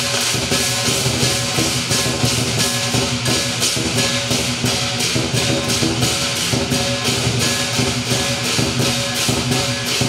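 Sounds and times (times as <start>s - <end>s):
big drum beating: 0.0s - 10.0s
cymbals clashing: 0.0s - 10.0s.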